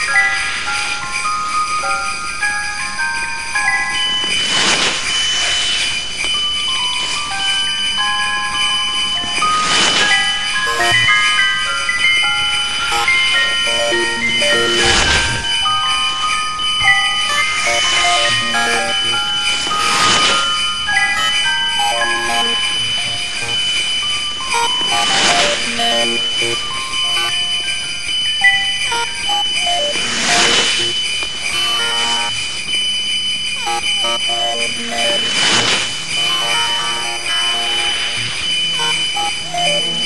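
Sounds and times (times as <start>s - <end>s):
looping toy-like melody notes: 10.2s - 32.7s, 33.6s - 40.0s.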